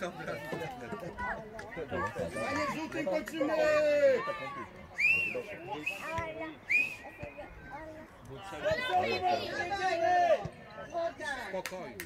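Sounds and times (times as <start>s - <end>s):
faint voices: 0.0s - 11.6s.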